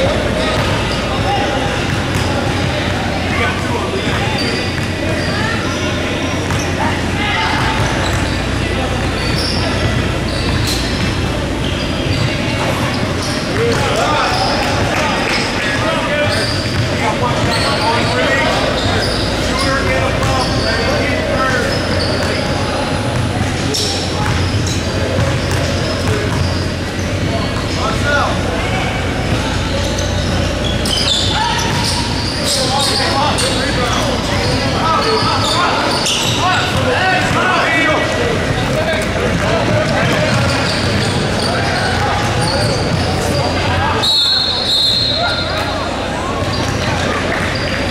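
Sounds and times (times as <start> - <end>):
people talking in echoing gym: 0.0 - 47.9
sneakers squeaking on hardwood: 0.1 - 28.2, 29.1 - 45.6
basketball bouncing on floor: 1.9 - 2.7.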